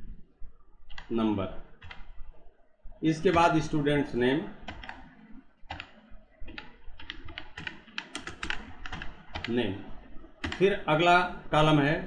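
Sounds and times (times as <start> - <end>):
computer keyboard typing: 1.8 - 2.1, 3.2 - 3.8, 4.6 - 9.6, 10.4 - 10.8.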